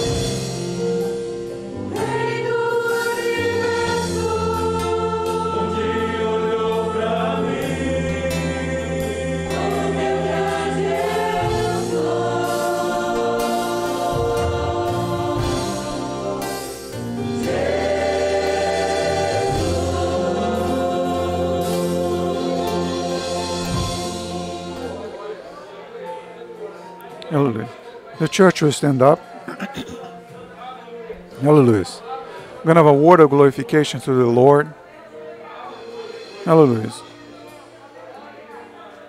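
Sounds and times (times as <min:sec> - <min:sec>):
drums: 0:00.0 - 0:25.2, 0:35.7 - 0:37.9
people singing a hymn: 0:00.0 - 0:26.4
guitar: 0:00.0 - 0:39.0
keyboard: 0:00.0 - 0:39.0.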